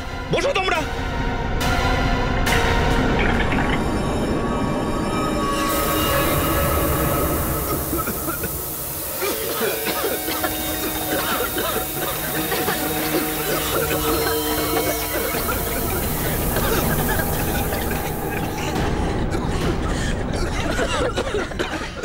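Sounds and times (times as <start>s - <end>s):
dramatic background music: 0.0s - 22.0s
gas canister hissing: 5.7s - 19.1s.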